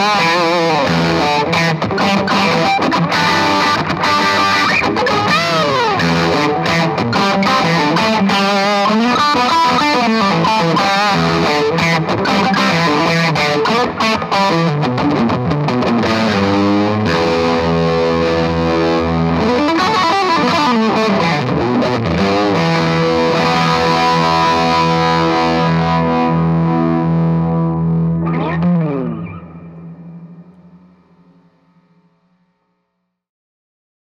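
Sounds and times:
distorted electric guitar: 0.0s - 33.2s.

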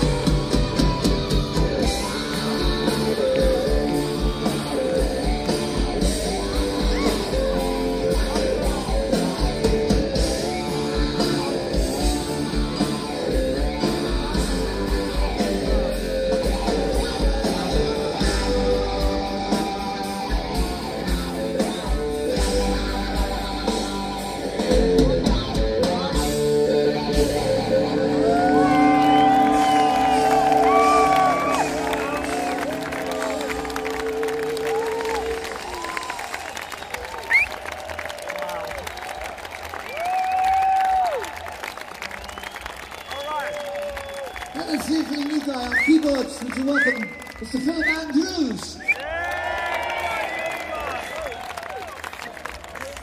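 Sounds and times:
live rock band with guitar: 0.0s - 37.6s
crowd cheering: 1.0s - 21.7s, 27.2s - 53.0s.

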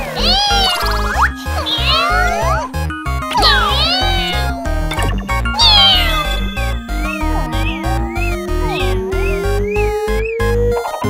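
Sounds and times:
cartoon kittens meowing and yowling: 0.0s - 4.9s, 5.5s - 9.9s
bouncy children's game music: 0.0s - 11.0s.

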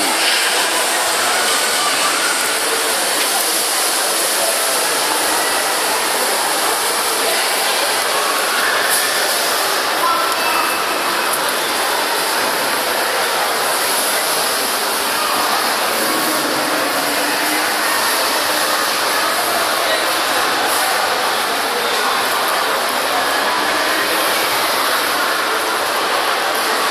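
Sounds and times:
faint voices: 0.0s - 26.9s
shopping mall din: 0.0s - 26.9s.

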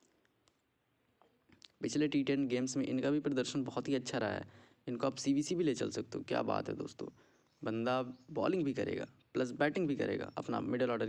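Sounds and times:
man speaking: 1.6s - 11.0s.

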